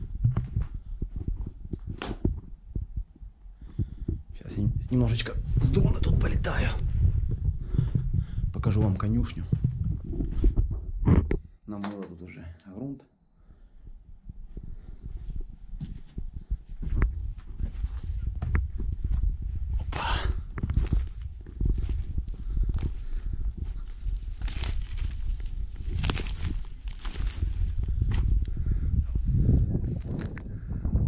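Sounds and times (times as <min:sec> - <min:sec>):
wind rumble on microphone: 0:00.0 - 0:11.6, 0:13.5 - 0:31.0
footsteps crunching: 0:15.8 - 0:29.2
dry grass brushing against legs: 0:20.8 - 0:28.4.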